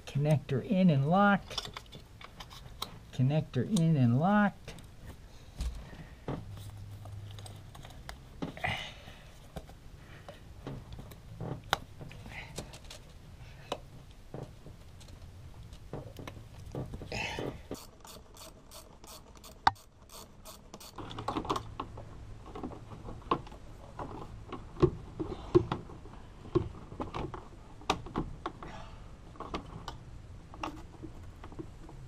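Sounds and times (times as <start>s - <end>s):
rubber parts rubbing and knocking: 4.6s - 28.7s.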